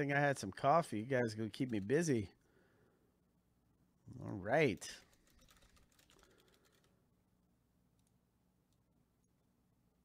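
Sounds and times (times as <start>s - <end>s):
faint typing on keyboard: 1.1s - 2.5s, 4.6s - 7.0s, 7.9s - 9.3s.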